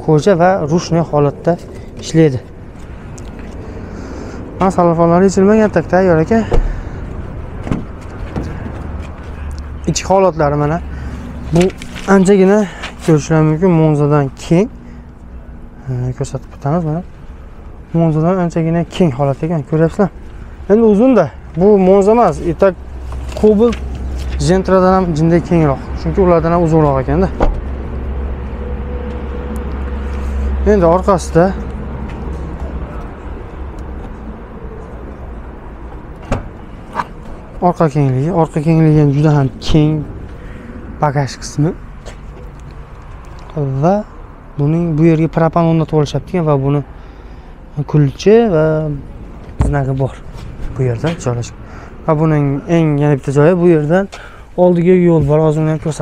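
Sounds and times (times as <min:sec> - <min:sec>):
low outdoor rumble: 0:00.0 - 0:56.0.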